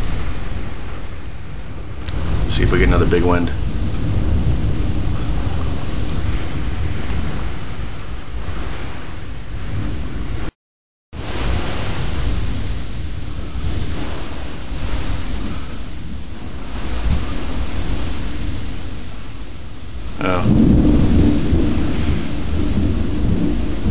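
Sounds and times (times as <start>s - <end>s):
low thunder rumble: 0.0s - 10.5s, 11.2s - 23.9s
heavy rain: 0.0s - 23.9s
wind: 0.0s - 23.9s.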